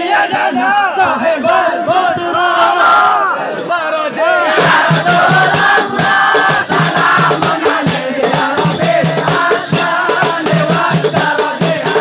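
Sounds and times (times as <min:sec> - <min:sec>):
men singing and shouting in chorus: 0:00.0 - 0:12.0
frame drums with jingling rattle: 0:04.5 - 0:12.0.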